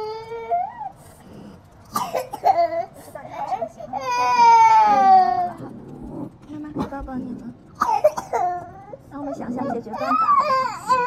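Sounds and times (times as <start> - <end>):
toddler crying: 0.0 - 1.0, 2.4 - 5.6, 8.0 - 11.0.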